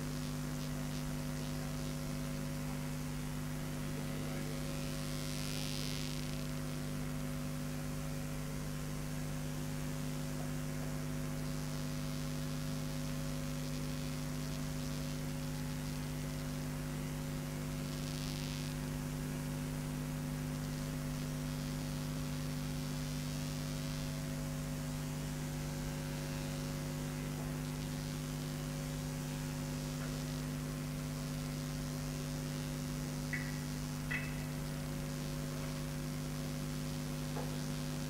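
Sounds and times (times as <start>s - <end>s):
electrical mains hum: 0.0s - 38.0s
background hiss: 11.4s - 38.0s.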